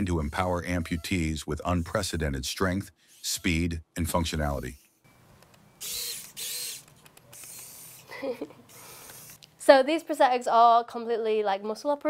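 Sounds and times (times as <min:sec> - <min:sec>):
bionic hand motors whirring: 0:00.0 - 0:01.2, 0:03.0 - 0:03.6, 0:04.5 - 0:05.0, 0:05.8 - 0:09.4.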